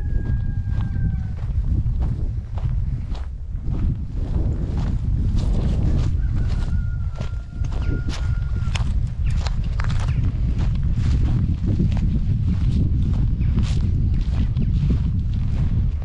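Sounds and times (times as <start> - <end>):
footsteps on dry brush: 0.0 - 16.0
wind rumbling on microphone: 0.0 - 16.0.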